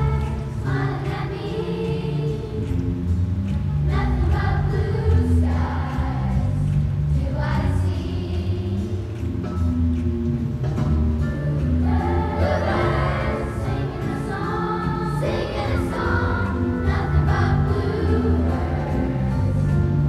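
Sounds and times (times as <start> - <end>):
children's choir singing: 0.0 - 9.6, 11.5 - 20.0
instrumental accompaniment: 0.0 - 20.0.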